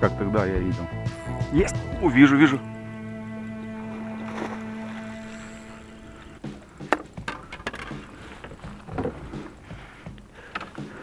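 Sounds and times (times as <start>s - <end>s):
steady humming tone: 0.9s - 11.0s
knocks and clatters on boat deck: 6.5s - 11.0s.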